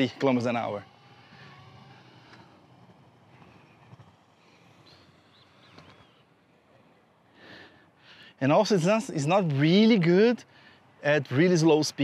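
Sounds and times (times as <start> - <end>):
inline skate wheels rolling on concrete: 0.0 - 6.8.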